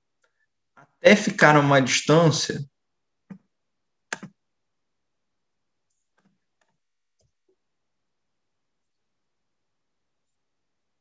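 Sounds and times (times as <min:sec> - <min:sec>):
computer mouse button clicking: 0:04.1 - 0:04.3.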